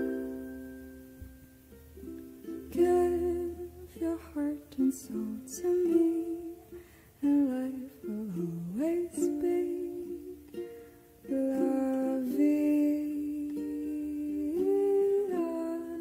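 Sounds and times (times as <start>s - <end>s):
plucked strings melody: 0.0s - 16.0s.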